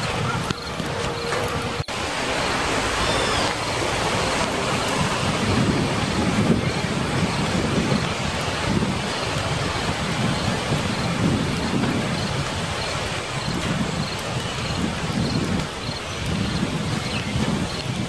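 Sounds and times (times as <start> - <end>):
rain-like hiss: 0.0 - 18.0.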